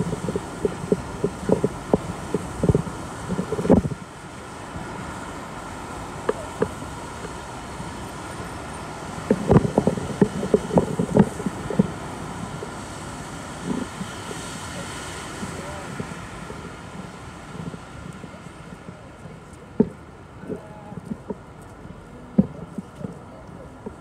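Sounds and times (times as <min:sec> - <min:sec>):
distant traffic: 0:00.0 - 0:24.0
passers-by talking: 0:11.5 - 0:24.0.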